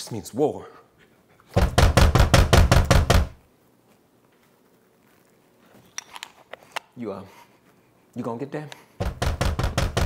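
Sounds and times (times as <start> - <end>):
heavy knocking on a door: 1.6 - 3.4, 9.0 - 10.0.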